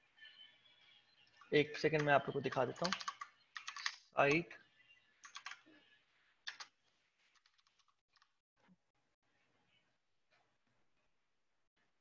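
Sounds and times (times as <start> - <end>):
computer keyboard typing: 1.9 - 4.4, 5.2 - 5.6, 6.4 - 6.7, 7.3 - 8.3.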